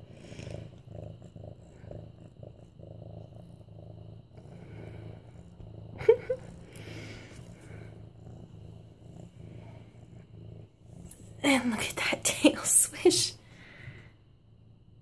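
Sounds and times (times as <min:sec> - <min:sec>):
cat purring: 0:00.0 - 0:15.0.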